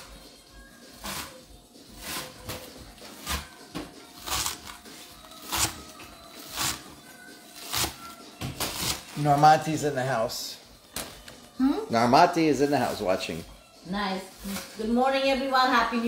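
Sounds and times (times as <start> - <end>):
faint background music: 0.0 - 16.0.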